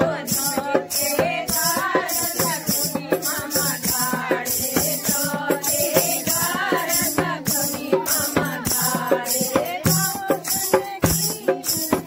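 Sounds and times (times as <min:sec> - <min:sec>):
dholak drum strokes: 0:00.0 - 0:12.0
rhythmic hand clapping: 0:00.0 - 0:12.0
women singing together: 0:00.0 - 0:12.0.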